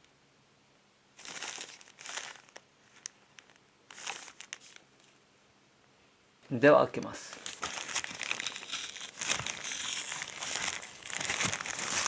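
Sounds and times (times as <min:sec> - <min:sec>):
plastic gloves crinkling: 0:01.2 - 0:05.1, 0:07.0 - 0:12.0.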